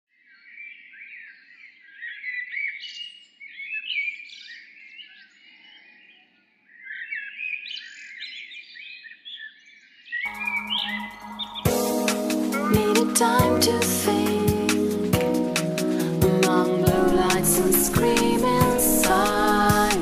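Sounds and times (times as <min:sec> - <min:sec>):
birds chirping and singing: 0:00.4 - 0:14.8.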